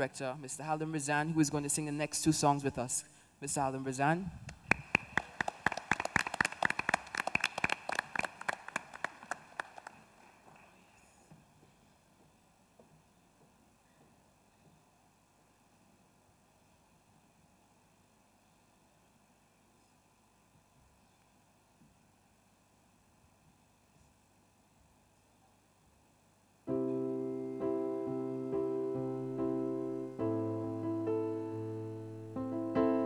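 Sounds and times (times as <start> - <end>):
audience applauding: 4.6 - 10.8.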